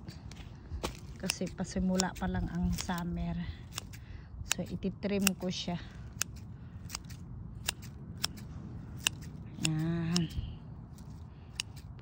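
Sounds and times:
scissors snipping leaves: 0:00.0 - 0:12.0.

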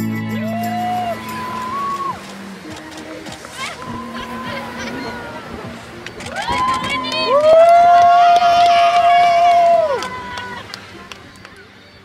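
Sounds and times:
pop music: 0:00.0 - 0:07.4
backing voices: 0:00.2 - 0:12.0.

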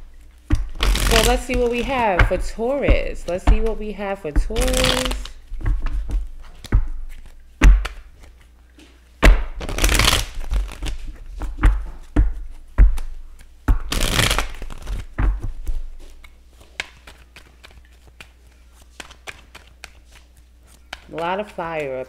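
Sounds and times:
cards riffling: 0:04.6 - 0:05.4, 0:09.6 - 0:11.2, 0:13.9 - 0:15.1.

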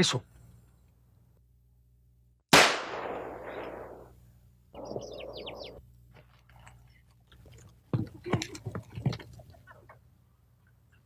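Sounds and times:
gunshot with echo: 0:02.5 - 0:04.1
birds chirping: 0:04.7 - 0:05.9.

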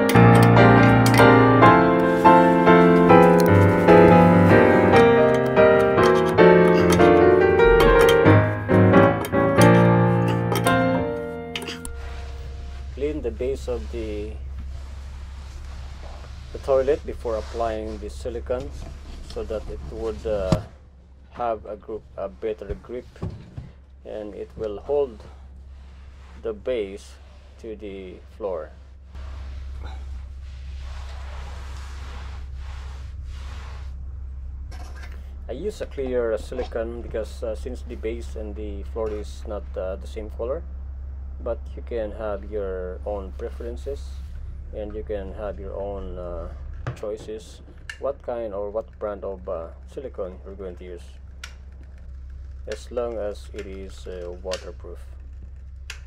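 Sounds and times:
piano music: 0:00.0 - 0:13.4
steady low hum: 0:00.0 - 0:56.0
cloth rag rubbing ceramic and tile: 0:01.8 - 0:05.3, 0:11.7 - 0:18.1, 0:28.7 - 0:34.0.

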